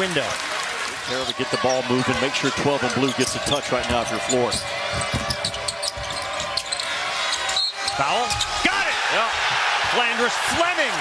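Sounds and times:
arena crowd noise: 0.0 - 11.0
basketball bouncing on hardwood: 3.8 - 6.4.

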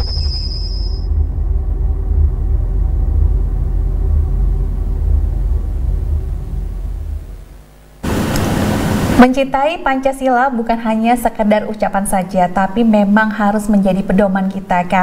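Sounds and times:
deep low rumbling: 1.0 - 9.2
loud burst of hiss: 8.0 - 9.2.

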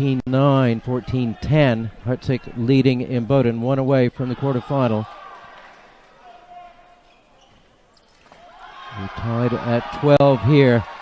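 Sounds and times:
faint crowd hubbub: 0.0 - 11.0.

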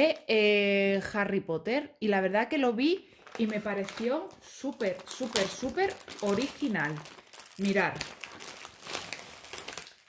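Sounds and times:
packaging crinkling: 3.1 - 10.0.

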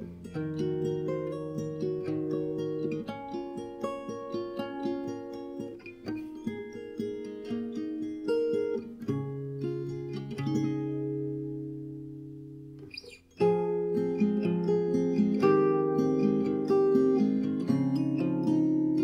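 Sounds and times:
fingerstyle acoustic guitar: 0.0 - 19.0.

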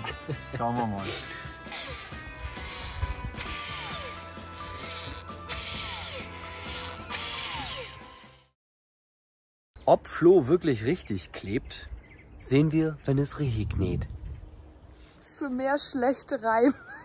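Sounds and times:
electric caulking gun motor: 1.7 - 8.5.

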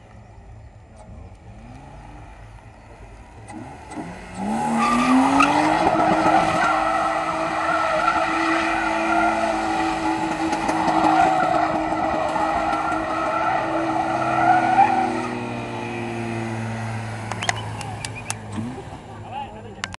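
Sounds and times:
car engine revving high: 1.3 - 19.4
tyres squealing on tarmac: 4.7 - 15.5, 17.4 - 18.7.

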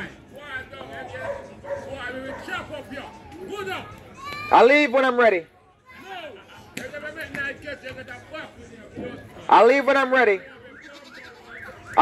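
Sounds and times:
distant voices talking and calling: 0.0 - 4.7, 5.8 - 12.0.

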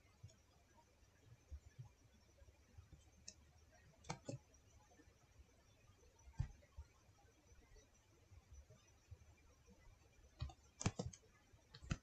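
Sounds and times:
computer input clicks: 10.4 - 11.2.

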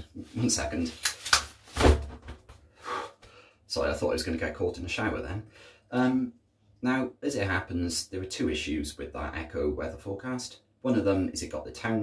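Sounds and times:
umbrella snapping open: 1.0 - 2.0.

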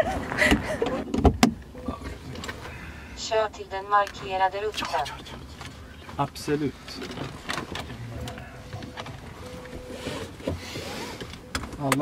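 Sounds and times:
low cabin hum: 0.0 - 12.0.

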